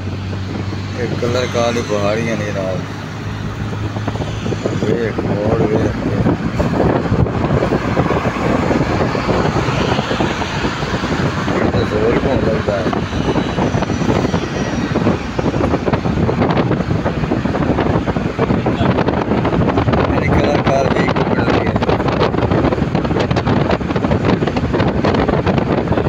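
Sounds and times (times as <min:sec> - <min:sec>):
vehicle road and wind noise: 0:00.0 - 0:26.0
wind on microphone: 0:00.0 - 0:26.0.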